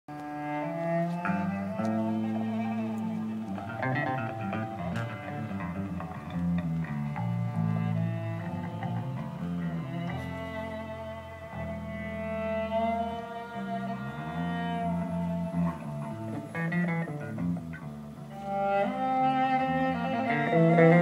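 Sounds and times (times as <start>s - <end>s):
bowed cello and bass: 0.1s - 21.0s.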